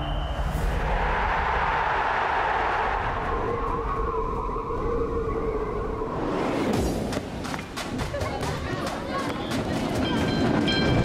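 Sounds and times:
tram rolling on rails: 8.0 - 11.0.

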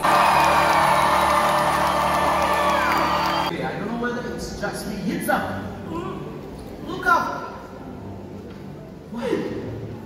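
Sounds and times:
audience cheering and whooping: 0.0 - 3.5
live stage music with held notes: 0.0 - 3.5.

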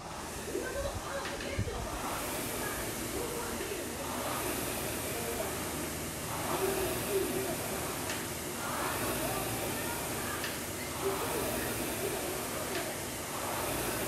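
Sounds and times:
rowing machine flywheel whoosh: 0.0 - 14.0
steady hiss: 0.0 - 14.0.

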